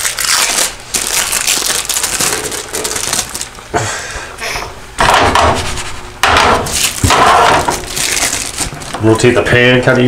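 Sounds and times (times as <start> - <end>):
plastic wrappers crinkling: 0.0 - 3.6, 6.6 - 9.3
person sighing: 3.8 - 4.7.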